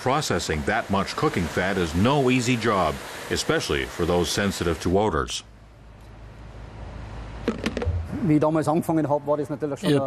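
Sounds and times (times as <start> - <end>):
plant room hum: 0.0 - 10.0
plastic buckets clattering: 7.5 - 7.9.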